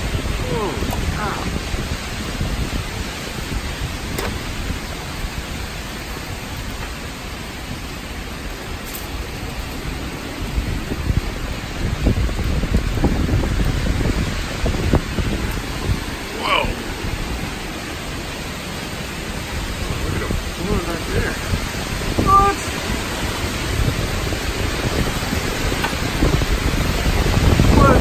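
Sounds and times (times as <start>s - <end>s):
heavy rain: 0.0s - 28.0s
strong gusting wind: 0.0s - 28.0s.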